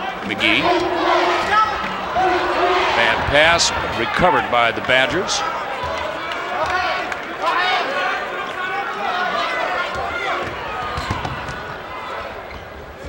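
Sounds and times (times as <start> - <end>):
voices calling out: 0.0 - 10.9
arena crowd noise: 0.0 - 13.0
players running on hardwood court: 0.2 - 7.8, 9.3 - 13.0.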